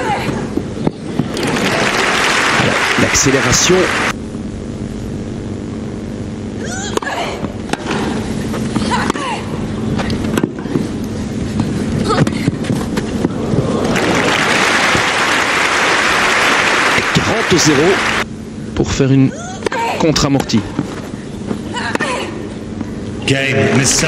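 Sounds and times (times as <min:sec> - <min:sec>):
crowd applause: 0:01.2 - 0:04.1, 0:13.4 - 0:18.2
racket hitting tennis ball: 0:07.7 - 0:08.2.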